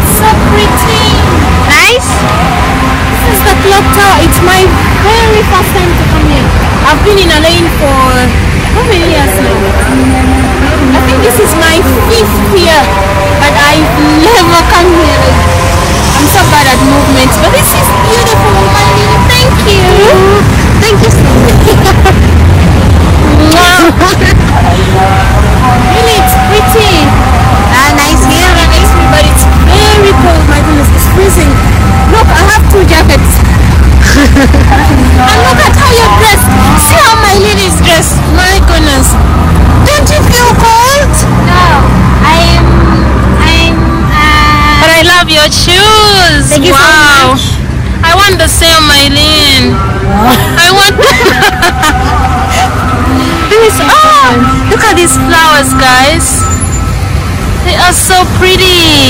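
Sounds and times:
steady low rumble: 0:00.0 - 0:59.0
person singing held gliding notes: 0:09.1 - 0:22.1, 0:49.8 - 0:57.0.

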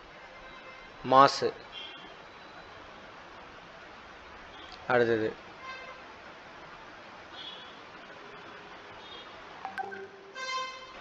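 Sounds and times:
electronic beep: 0:09.7 - 0:10.4.

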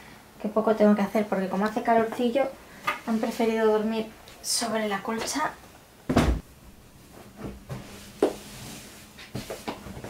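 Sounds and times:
thump on wooden bunk bed: 0:06.1 - 0:06.4.

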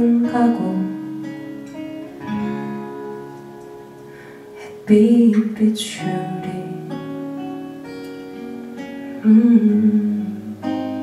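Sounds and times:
person singing: 0:00.0 - 0:01.1, 0:04.6 - 0:07.1, 0:09.2 - 0:11.0
acoustic guitar: 0:00.0 - 0:11.0.

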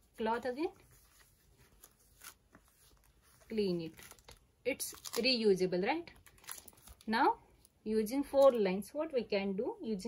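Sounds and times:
cloth rubbing on glossy paper: 0:00.0 - 0:04.2.

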